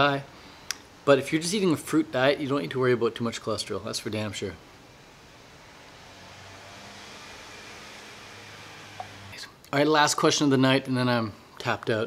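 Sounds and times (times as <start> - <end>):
even hiss: 0.0 - 9.6.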